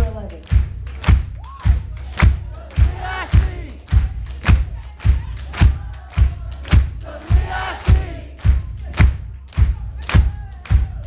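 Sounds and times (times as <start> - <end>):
live band heavy beat: 0.0 - 11.0
voices singing: 1.4 - 11.0.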